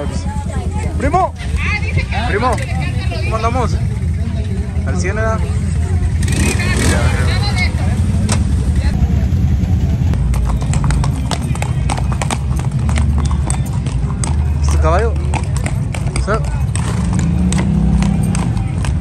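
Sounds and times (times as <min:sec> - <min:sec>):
hooves clip-clopping on concrete: 0:00.0 - 0:09.0, 0:10.1 - 0:19.0
steady low rumble: 0:00.0 - 0:11.9
voices: 0:00.0 - 0:19.0.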